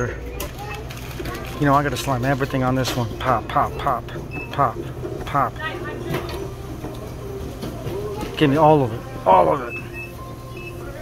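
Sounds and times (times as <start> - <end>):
low store background hum: 0.0 - 11.0.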